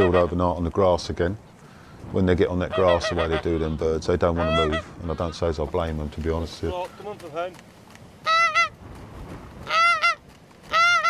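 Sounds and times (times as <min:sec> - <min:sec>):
goose honking: 0:00.0 - 0:00.4, 0:02.7 - 0:05.5, 0:08.2 - 0:08.8, 0:09.6 - 0:11.0.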